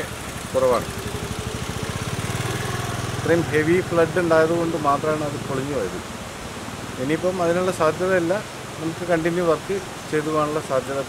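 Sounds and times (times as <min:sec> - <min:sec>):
vehicle engine running: 0:00.0 - 0:06.1.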